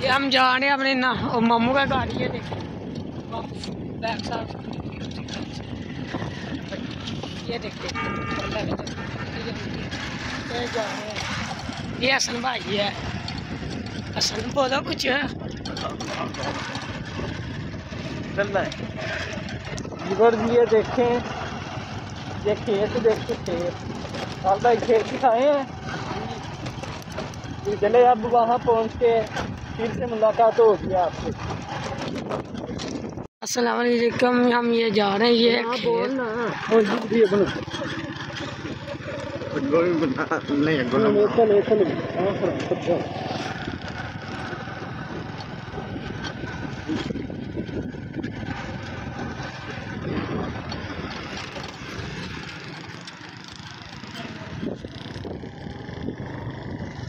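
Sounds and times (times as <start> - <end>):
motorcycle engine running: 0.0 - 57.0
wind noise on microphone: 0.0 - 57.0.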